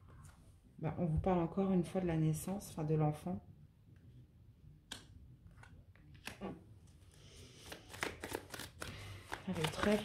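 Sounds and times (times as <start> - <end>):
cards shuffling: 7.6 - 10.0.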